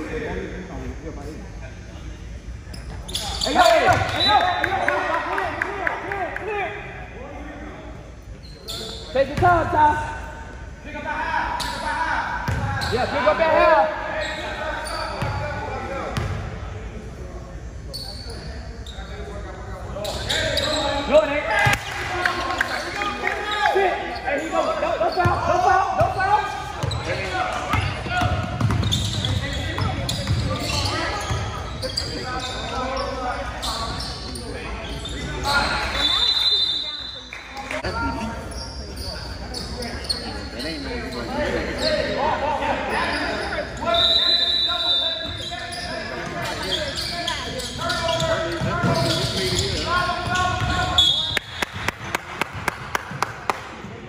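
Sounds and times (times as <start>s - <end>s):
voices of players and spectators: 0.0s - 54.0s.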